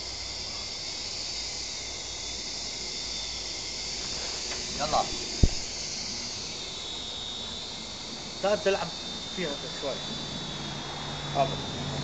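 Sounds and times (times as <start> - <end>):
quadcopter propellers whining: 0.0 - 12.0.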